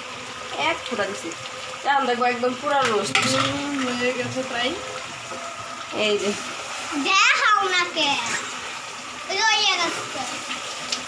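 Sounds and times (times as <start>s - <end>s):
food sizzling in a pan: 0.0s - 11.0s
voices talking: 0.5s - 10.9s.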